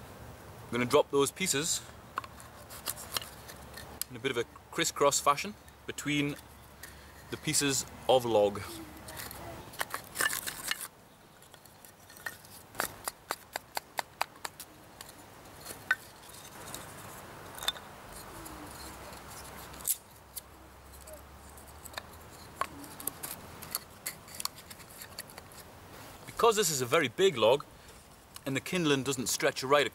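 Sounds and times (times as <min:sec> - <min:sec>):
wooden sticks clicking and knocking: 0:05.6 - 0:07.9, 0:09.0 - 0:26.4.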